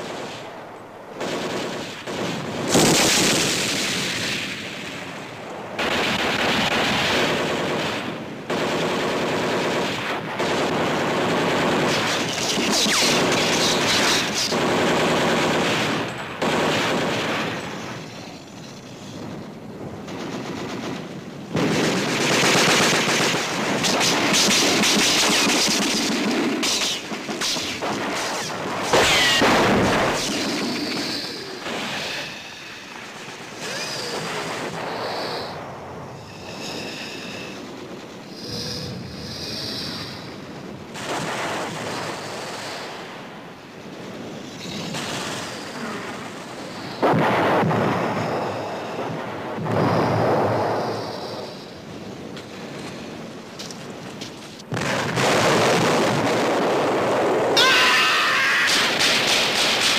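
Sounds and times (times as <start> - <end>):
machine-gun fire bursts: 1.2 - 4.2, 5.8 - 17.6, 20.1 - 31.9, 58.7 - 59.9.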